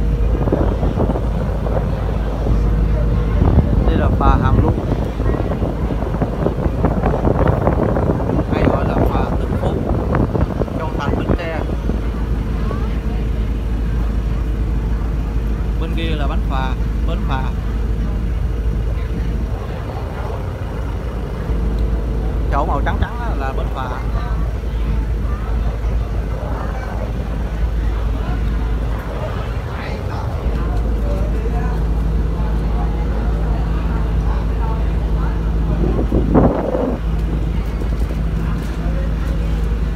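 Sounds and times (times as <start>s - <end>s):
wind on microphone: 0.0s - 16.6s, 17.2s - 39.9s
faint voices: 0.0s - 39.9s
people talking: 0.0s - 39.9s
ship engine rumbling: 0.0s - 39.9s.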